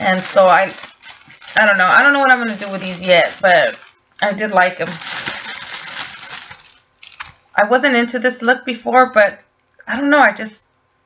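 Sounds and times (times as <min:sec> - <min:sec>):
plastic wrapping crinkling: 0:00.0 - 0:07.6.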